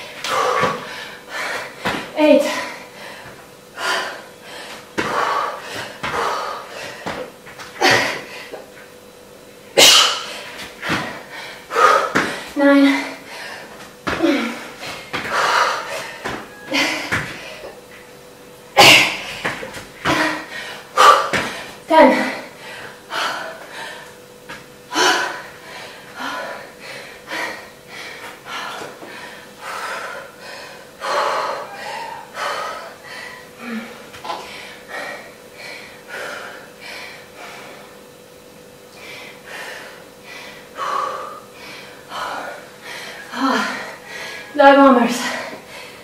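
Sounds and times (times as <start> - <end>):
woman gasping breaths: 24.9 - 37.9, 39.0 - 44.6.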